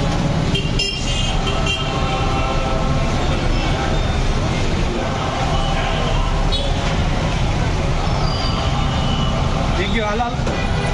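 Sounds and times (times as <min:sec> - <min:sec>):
crowd voices: 0:00.0 - 0:10.9
vehicles rumbling: 0:00.0 - 0:10.9.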